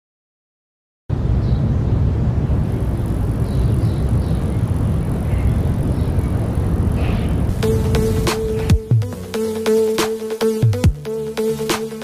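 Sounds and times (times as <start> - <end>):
heavy low rumbling bass: 1.1 - 9.6
faint high whine: 1.8 - 9.0.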